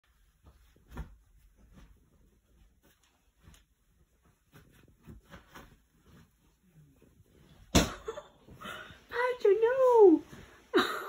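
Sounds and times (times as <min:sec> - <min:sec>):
bedding rustling and bumping: 0:00.0 - 0:10.7.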